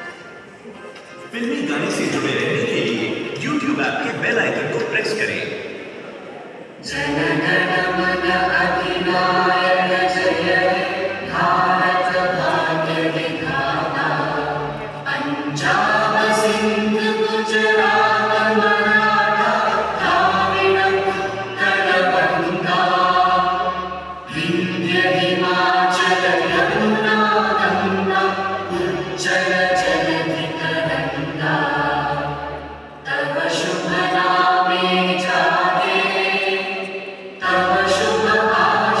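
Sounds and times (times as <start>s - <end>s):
choir singing an anthem: 6.7s - 39.0s.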